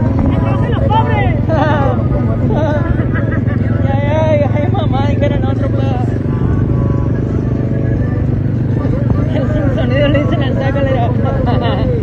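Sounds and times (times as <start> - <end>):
indistinct voices: 0.0 - 12.0
vehicle engine droning: 0.0 - 12.0.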